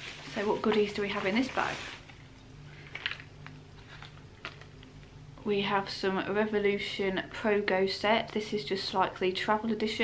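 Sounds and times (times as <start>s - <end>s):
faint package rustling: 0.0s - 5.1s
low steady hum: 0.0s - 10.0s.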